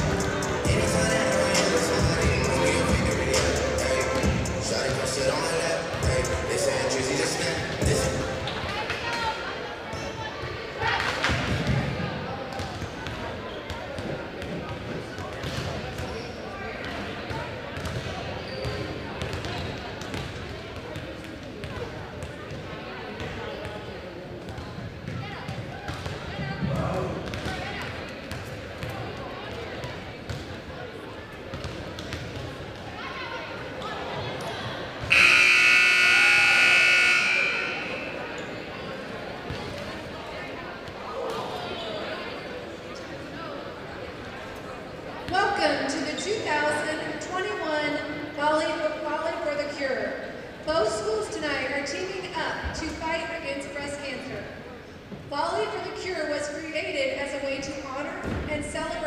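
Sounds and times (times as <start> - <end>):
players chatter: 0.0 - 58.0
volleyballs hit and bouncing: 10.8 - 16.2
loud scoreboard buzzer: 35.1 - 38.5.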